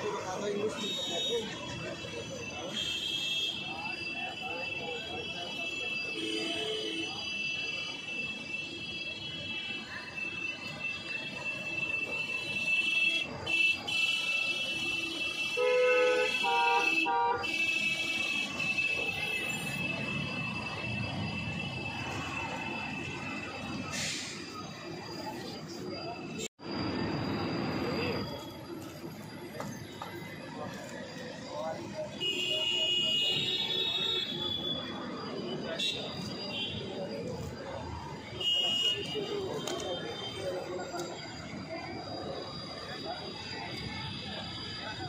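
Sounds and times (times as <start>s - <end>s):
high-pitched steady whine: 16.9s - 45.0s.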